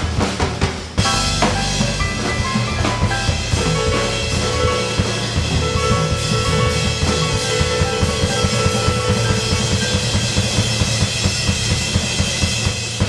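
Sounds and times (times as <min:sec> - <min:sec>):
drums keeping quick beat: 0:00.0 - 0:13.0
jazz trio playing: 0:00.0 - 0:13.0.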